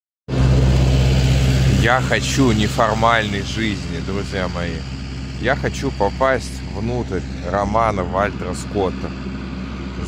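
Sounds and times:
low engine hum: 0.3 - 10.0
man speaking: 1.6 - 9.2.

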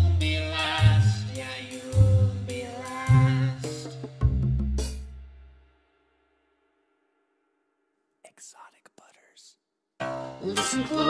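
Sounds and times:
person whispering: 8.2 - 9.7.

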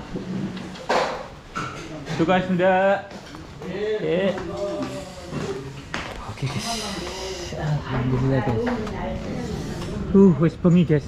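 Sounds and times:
voices talking: 3.4 - 11.0.

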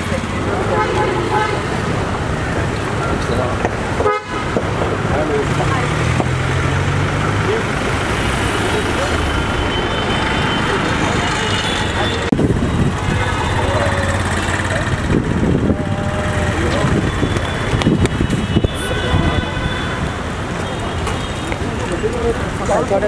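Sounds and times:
car horns honking: 0.0 - 2.1, 3.9 - 4.8, 8.1 - 14.6, 15.6 - 22.1
people talking: 0.0 - 3.8, 4.9 - 12.3, 12.9 - 19.7, 21.5 - 23.0
vehicle engines running: 0.0 - 23.0.

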